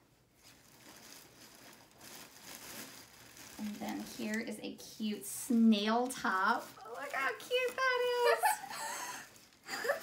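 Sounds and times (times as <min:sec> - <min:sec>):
plastic bag crinkling: 0:00.2 - 0:10.0.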